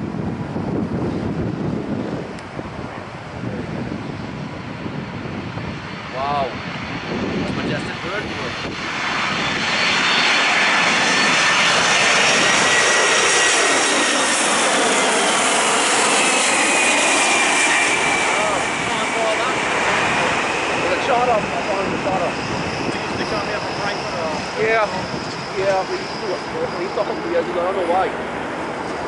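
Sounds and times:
jet engines roaring overhead: 0.0 - 29.0.

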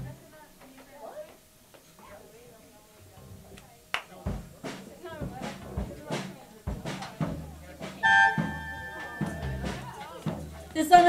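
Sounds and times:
low bass notes: 0.0 - 0.2, 3.1 - 3.7, 4.3 - 11.0
voices chattering: 0.0 - 11.0
drum hits: 3.2 - 11.0
held instrument note: 7.8 - 10.7.

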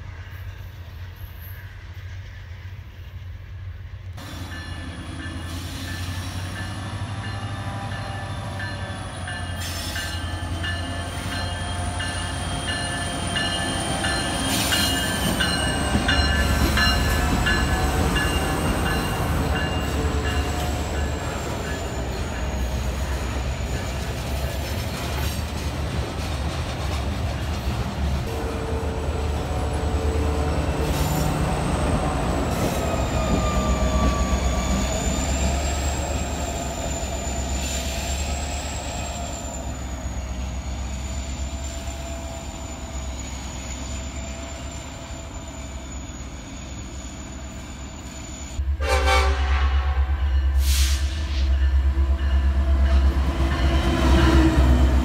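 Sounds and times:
train wheels squealing on rail: 0.0 - 3.6, 4.2 - 25.6, 27.4 - 48.6, 50.2 - 55.0
locomotive approaching: 0.0 - 55.0.

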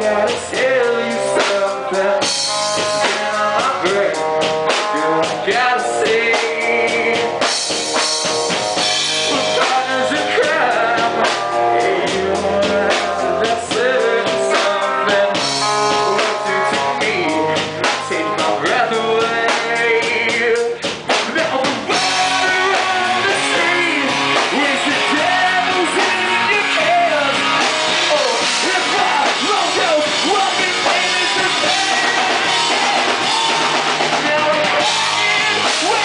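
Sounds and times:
man singing: 0.0 - 7.6, 9.1 - 36.0
drum kit: 0.0 - 36.0
electric guitar: 0.0 - 36.0.

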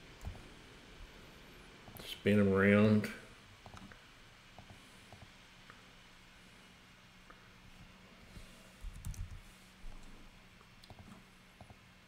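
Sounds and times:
steady low hum: 0.0 - 12.0
computer mouse clicks: 0.2 - 0.4, 3.6 - 4.0, 4.6 - 5.3, 8.9 - 10.1, 10.8 - 11.8.

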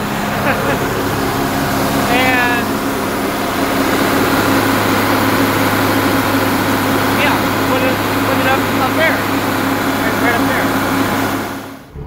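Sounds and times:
diesel tractor engine running: 0.0 - 12.0.

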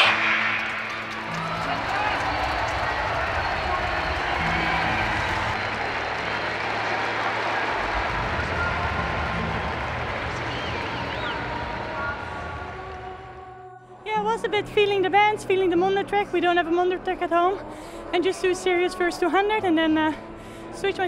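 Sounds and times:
stadium crowd cheering: 0.0 - 13.5.

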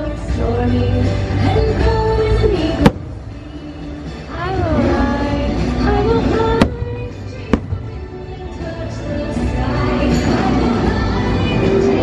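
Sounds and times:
music playing: 0.0 - 12.0.

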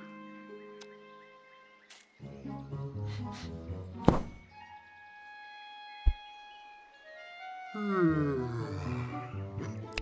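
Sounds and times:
loud thump: 4.0 - 4.4
short deep thud: 4.0 - 4.4.

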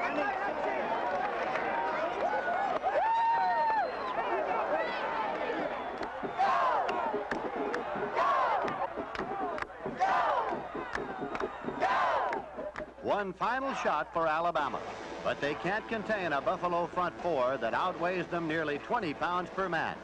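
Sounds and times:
stadium crowd cheering: 0.0 - 14.8.

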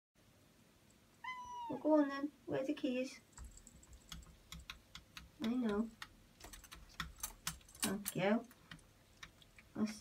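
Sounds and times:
cat meowing: 1.2 - 1.9.

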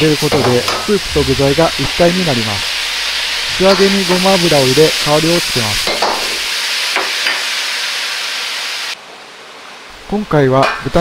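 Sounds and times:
stir-fry sizzling in wok: 0.0 - 10.1
faint hiss: 0.0 - 11.0.

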